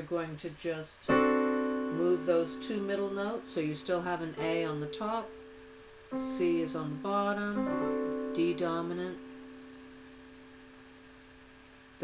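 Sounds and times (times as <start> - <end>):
digital piano chord: 1.1 - 12.0.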